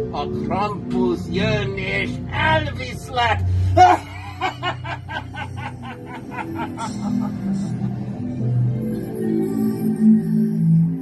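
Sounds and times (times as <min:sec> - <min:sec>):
man laughing menacingly: 0:03.8 - 0:08.2.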